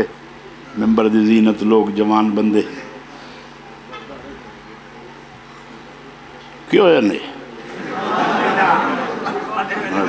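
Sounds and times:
speech: 0:00.0 - 0:03.1, 0:03.8 - 0:07.6
steady background hum: 0:00.0 - 0:10.0.

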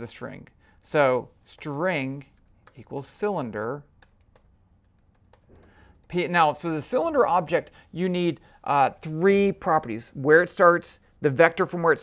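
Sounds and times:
keyboard key clicks: 0:01.5 - 0:06.2.

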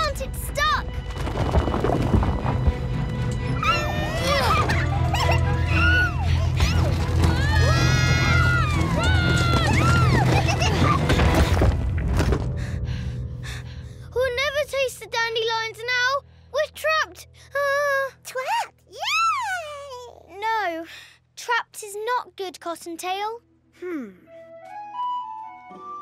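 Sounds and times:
rumbling crash: 0:00.8 - 0:13.2
loud cartoon music: 0:03.3 - 0:11.4.

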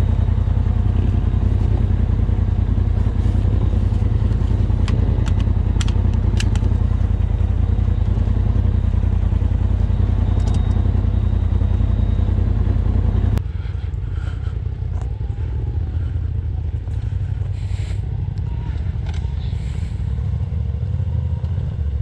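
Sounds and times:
engine idling: 0:00.0 - 0:22.0
sharp clicks: 0:04.2 - 0:06.9, 0:10.4 - 0:10.8.

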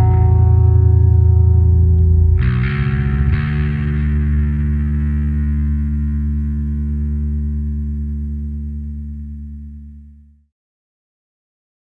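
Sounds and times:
distorted electric guitar chord: 0:00.0 - 0:10.3.

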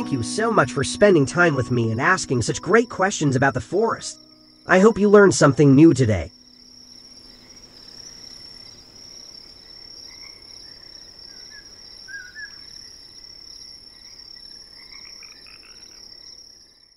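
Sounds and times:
pulsing cricket trill: 0:00.0 - 0:16.9.

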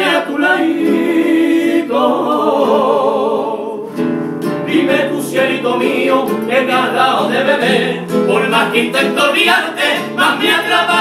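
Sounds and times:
male voices singing in harmony: 0:00.0 - 0:04.0, 0:04.7 - 0:11.0
strummed nylon-string guitar: 0:03.8 - 0:11.0.

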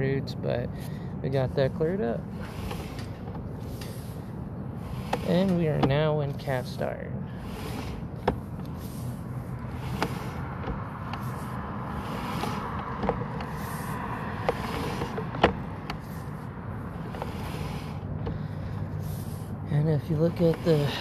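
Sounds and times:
low mechanical hum: 0:00.0 - 0:21.0
sharp clicks and knocks: 0:08.2 - 0:08.8, 0:09.9 - 0:16.3.

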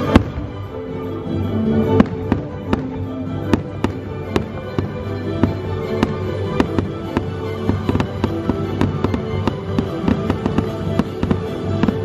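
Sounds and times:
show music: 0:00.0 - 0:12.0.

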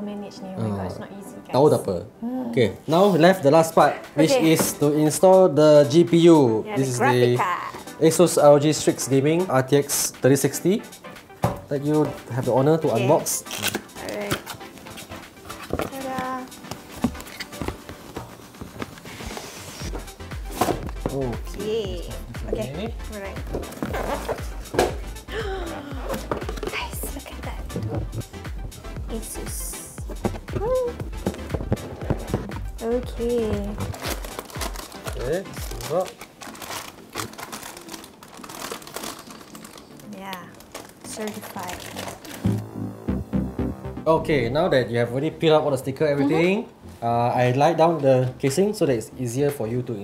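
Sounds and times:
cardboard sleeve sliding hiss: 0:14.8 - 0:20.0
plastic bag crinkling: 0:33.8 - 0:42.6.

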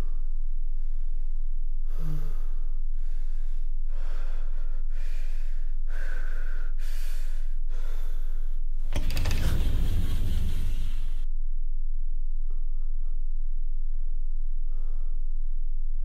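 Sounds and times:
man breathing heavily: 0:00.0 - 0:08.7, 0:14.6 - 0:15.4
steady low hum: 0:00.0 - 0:16.0
loud deep noise: 0:09.0 - 0:11.3.

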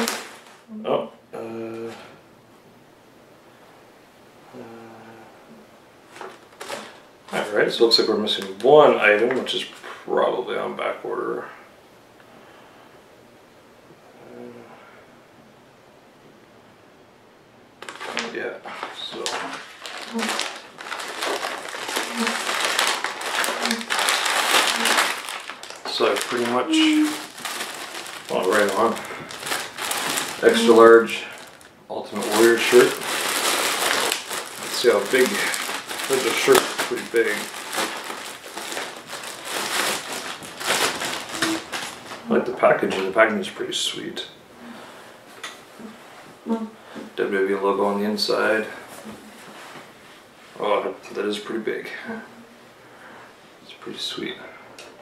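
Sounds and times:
plastic bag crinkling: 0:00.0 - 0:00.7, 0:06.1 - 0:09.9, 0:17.8 - 0:43.2
person murmuring hmm: 0:04.5 - 0:05.4, 0:22.0 - 0:22.5, 0:23.6 - 0:24.0, 0:24.7 - 0:25.1, 0:26.3 - 0:27.3, 0:30.4 - 0:31.4, 0:41.3 - 0:41.7
paper rustling: 0:06.1 - 0:07.4, 0:17.8 - 0:43.1.

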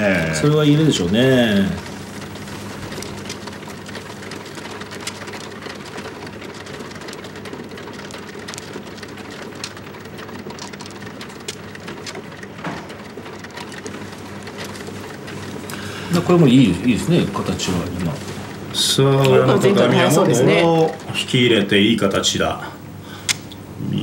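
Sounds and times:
low hum and hiss: 0:00.0 - 0:24.0
mahjong tiles clicking: 0:00.4 - 0:15.8.

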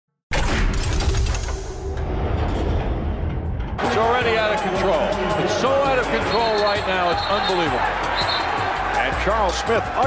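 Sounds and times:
basketball game broadcast: 0:03.8 - 0:10.0.

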